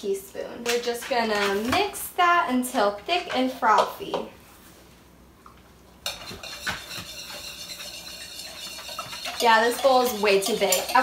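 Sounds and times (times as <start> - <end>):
wire whisk beating in a bowl: 6.0 - 11.0.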